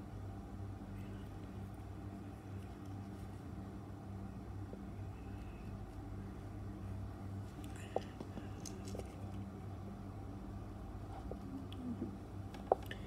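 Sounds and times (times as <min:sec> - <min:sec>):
faint steady low hum: 0:00.0 - 0:13.0.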